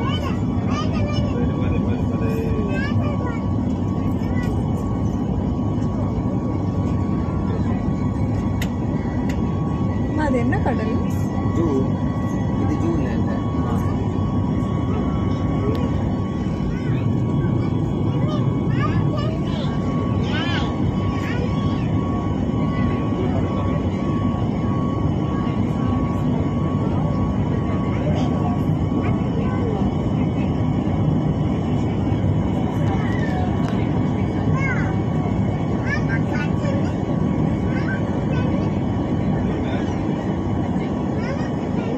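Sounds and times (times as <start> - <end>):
engines and airflow rushing: 0.0 - 41.9.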